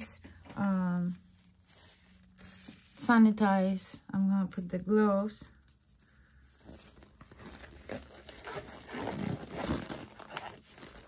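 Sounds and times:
gloves crinkling and rustling: 0:00.3 - 0:11.0.

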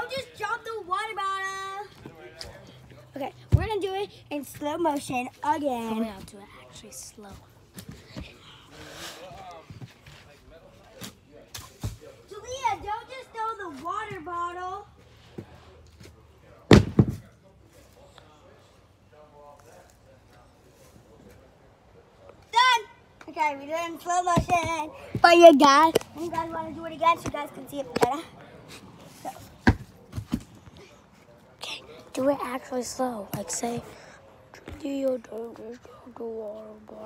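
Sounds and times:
object thumping on ground: 0:16.7 - 0:17.3.

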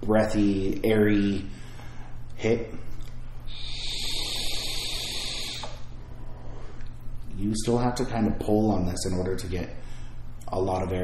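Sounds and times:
hiss of air through vape: 0:03.5 - 0:05.9.

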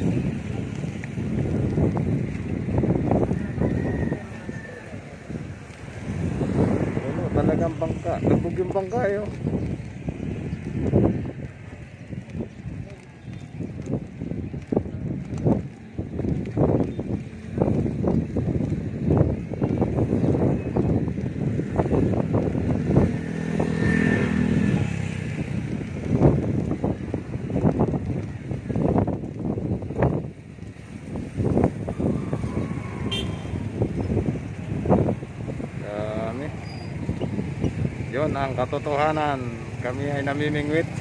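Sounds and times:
traffic rumble on bridge: 0:00.0 - 0:41.0
vehicle engine passing: 0:05.3 - 0:09.4, 0:21.7 - 0:26.4.

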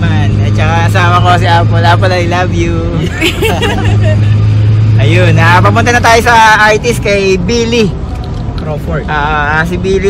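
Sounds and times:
voices in a car: 0:00.0 - 0:10.0.

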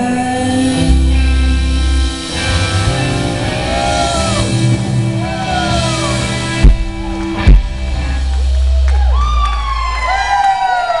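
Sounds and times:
bass note ringing out: 0:00.8 - 0:10.1
audience cheering woo: 0:02.8 - 0:07.5, 0:08.2 - 0:11.0.

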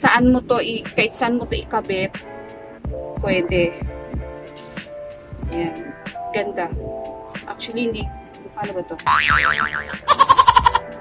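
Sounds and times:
background music: 0:00.0 - 0:11.0
wobbling boing tone: 0:09.1 - 0:10.8.

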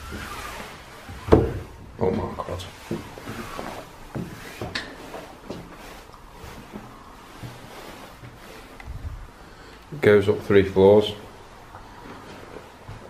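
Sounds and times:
footsteps on wooden stairs: 0:00.0 - 0:09.2, 0:11.6 - 0:13.0.

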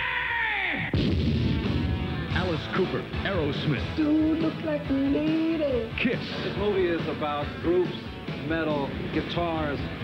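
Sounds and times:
live heavy metal music: 0:00.8 - 0:10.0
loud boom with deep rumble: 0:00.9 - 0:02.5
man's voice: 0:02.3 - 0:10.0.

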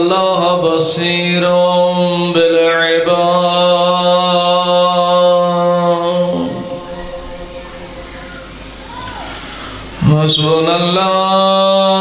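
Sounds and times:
man chanting religious recitation: 0:00.0 - 0:08.5, 0:09.9 - 0:12.0.

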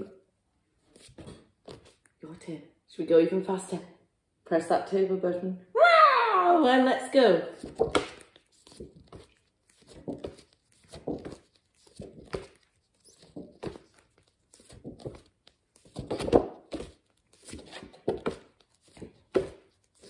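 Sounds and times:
woman saying letter sounds: 0:02.2 - 0:03.9.

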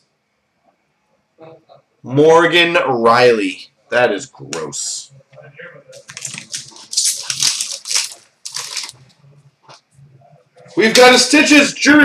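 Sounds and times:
foil wrapper tearing and crinkling: 0:06.0 - 0:09.0.

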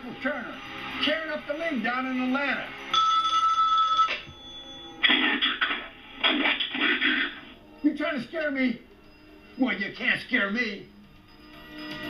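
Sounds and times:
telephone ringing: 0:02.8 - 0:05.1.

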